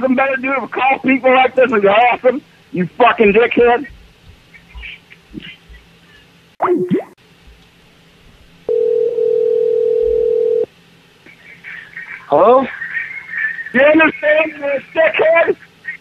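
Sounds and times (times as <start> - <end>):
telephone ringback tone: 8.7 - 10.7.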